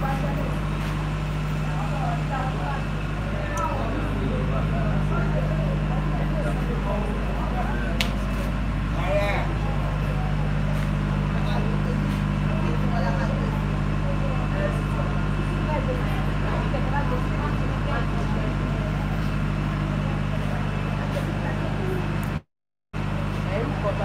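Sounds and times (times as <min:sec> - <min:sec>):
low mechanical hum: 0:00.0 - 0:22.4
people chattering: 0:00.0 - 0:22.4, 0:23.2 - 0:24.0.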